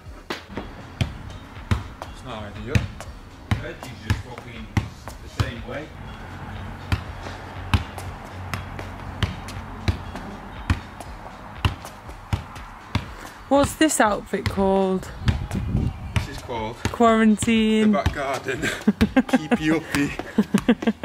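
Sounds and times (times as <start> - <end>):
basketball bouncing on stone patio: 0.3 - 5.8, 6.7 - 21.0.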